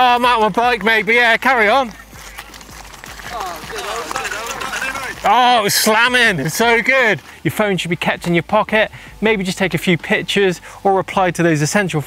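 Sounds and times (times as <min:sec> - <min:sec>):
man's voice on phone loudspeaker: 0:00.0 - 0:02.1, 0:03.4 - 0:12.0
bike clicking on gravel: 0:00.0 - 0:10.7.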